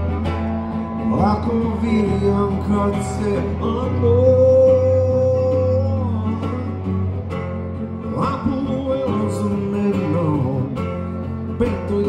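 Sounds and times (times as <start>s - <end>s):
strummed acoustic guitar: 0.0s - 12.0s
man singing: 0.9s - 7.2s, 8.0s - 12.0s.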